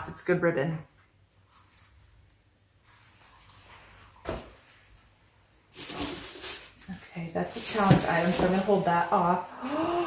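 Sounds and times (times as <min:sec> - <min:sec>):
rustling of items in a box: 0:02.8 - 0:09.5.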